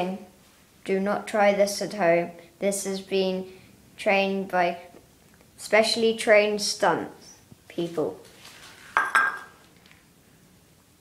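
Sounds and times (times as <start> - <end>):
ceramic bowl clinking on floor: 9.0 - 9.6.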